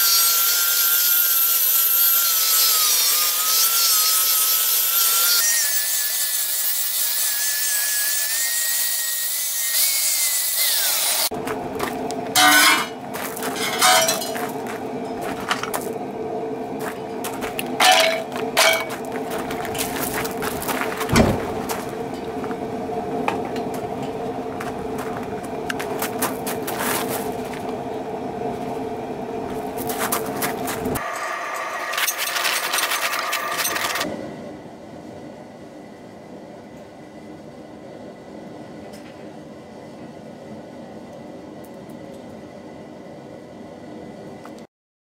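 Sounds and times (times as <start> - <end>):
mechanical hum with clicks: 11.3 - 44.7.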